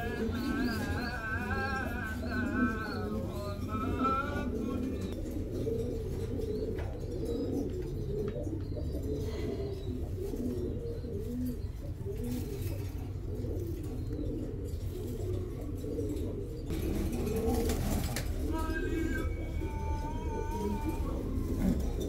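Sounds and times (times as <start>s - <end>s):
pigeons cooing: 0.0s - 22.0s.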